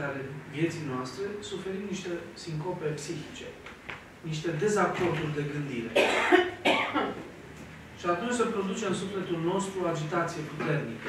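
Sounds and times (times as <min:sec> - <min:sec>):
person coughing: 0:05.9 - 0:07.2.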